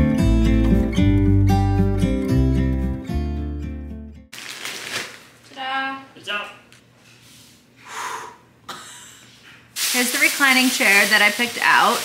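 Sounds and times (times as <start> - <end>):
plastic-wrapped mattress rustling: 4.3 - 5.5, 9.8 - 12.0.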